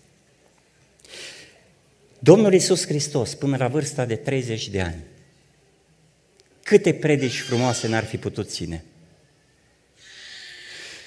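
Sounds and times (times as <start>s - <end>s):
man drawing breath: 10.0s - 11.0s.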